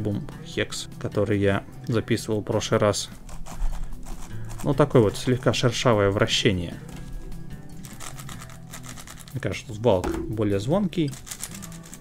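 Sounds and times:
background music: 0:00.0 - 0:12.0
plastic cube clicking and scraping: 0:03.2 - 0:05.7, 0:07.8 - 0:09.5, 0:11.1 - 0:12.0.

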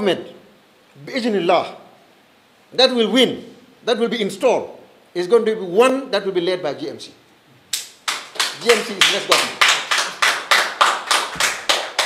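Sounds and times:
rhythmic hand clapping: 0:07.7 - 0:12.0.

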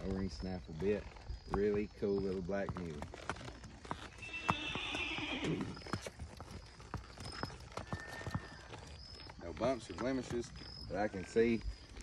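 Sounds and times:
hooves clip-clopping on asphalt: 0:00.0 - 0:12.0.

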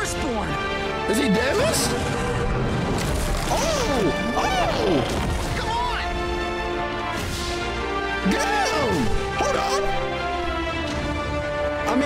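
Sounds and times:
dramatic music: 0:00.0 - 0:12.0.

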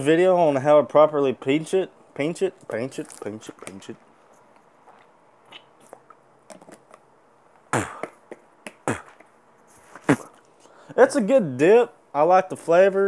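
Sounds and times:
faint mouth clicks: 0:04.9 - 0:06.2
person spitting into a bottle: 0:04.9 - 0:06.2, 0:07.7 - 0:10.4.

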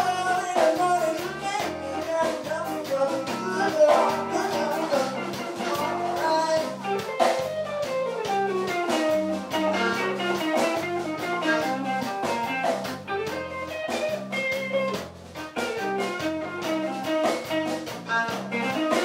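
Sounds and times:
drums: 0:00.0 - 0:19.0
electric guitar: 0:00.0 - 0:19.0.

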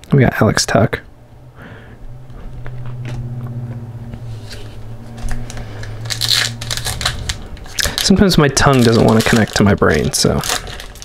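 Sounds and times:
steady low hum: 0:00.0 - 0:11.0
foil wrapper crinkling and tearing: 0:04.5 - 0:11.0.

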